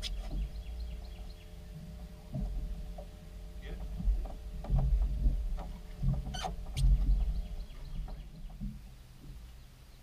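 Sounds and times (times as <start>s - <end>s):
wind rumble on microphone: 0.0s - 10.0s.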